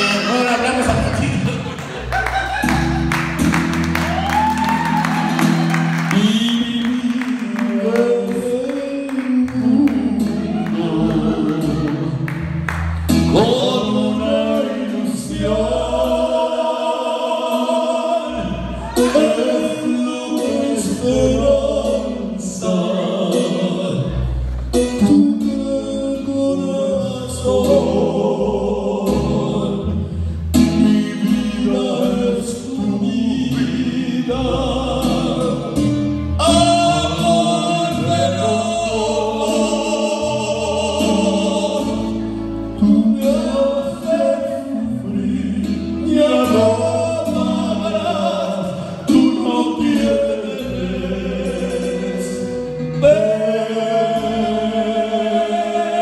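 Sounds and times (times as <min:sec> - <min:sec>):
two men singing: 0:00.0 - 0:02.1, 0:04.2 - 0:56.0.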